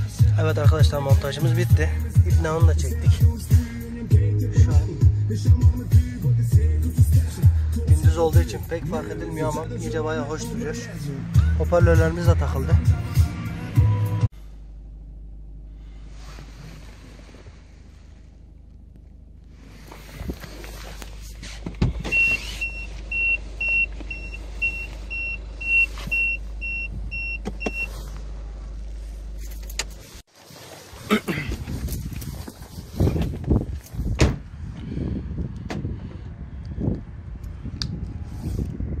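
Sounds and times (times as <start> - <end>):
low steady hum: 14.3 - 30.2
knocks thumps and rustles: 21.2 - 22.2
dashboard warning chime beeping: 22.0 - 28.0.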